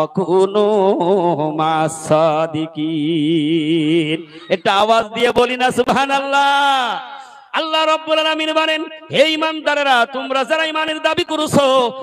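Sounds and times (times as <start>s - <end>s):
man chanting through loudspeaker: 0.0s - 12.0s.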